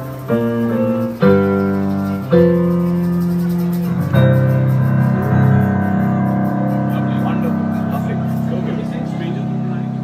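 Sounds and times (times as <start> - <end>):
digital piano chords: 0.0 - 10.0.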